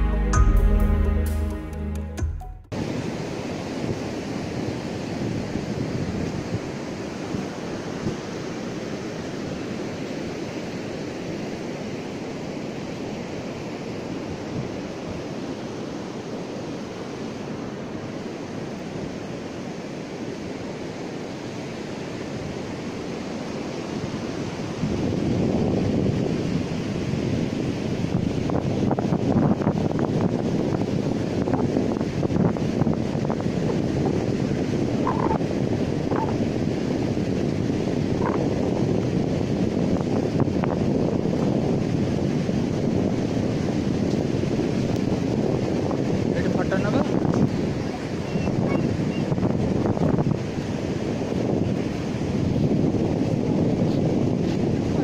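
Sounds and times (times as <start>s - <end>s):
surf breaking on beach: 2.7s - 55.0s
wind buffeting microphone: 2.7s - 55.0s.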